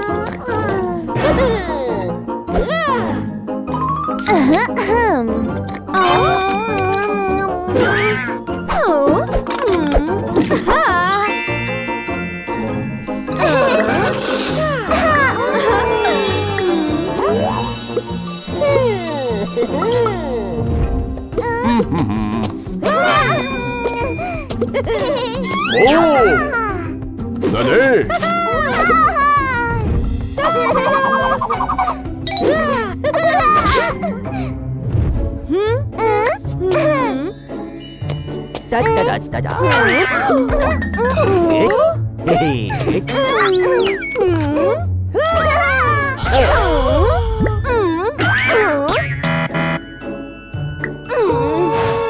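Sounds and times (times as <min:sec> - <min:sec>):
background music: 0:00.0 - 0:52.0
high-pitched cartoon giggle: 0:13.3 - 0:17.7, 0:21.5 - 0:26.8, 0:27.9 - 0:29.8, 0:30.4 - 0:34.3, 0:38.9 - 0:49.1
cartoon character voice: 0:25.6 - 0:26.8, 0:38.7 - 0:44.8.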